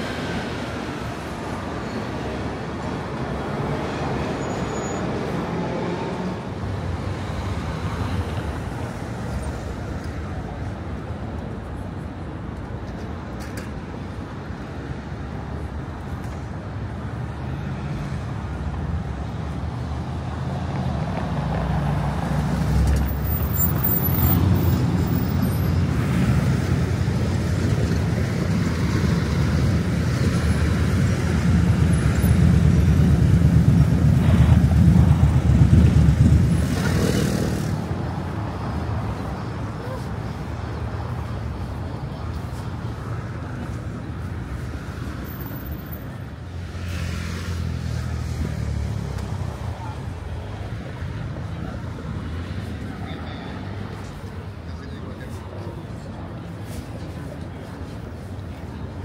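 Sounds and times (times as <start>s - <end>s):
city traffic rumble: 0.0s - 59.0s.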